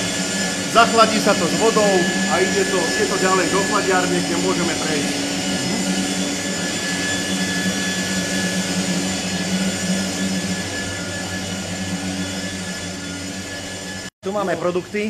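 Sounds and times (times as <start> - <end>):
factory machinery humming: 0.0 - 15.0.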